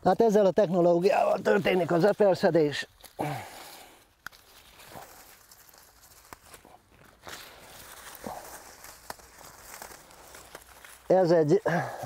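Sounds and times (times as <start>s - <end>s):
plants rustling: 0.0s - 12.0s.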